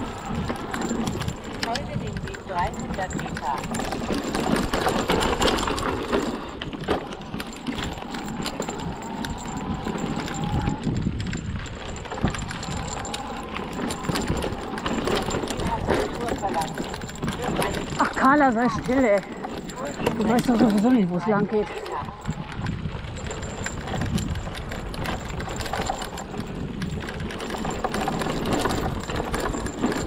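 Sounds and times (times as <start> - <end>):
wind on microphone: 0.0 - 20.8, 21.4 - 30.0
bike knocking and rattling: 0.0 - 30.0
bike tyres on dirt and leaves: 2.7 - 20.5, 21.1 - 30.0.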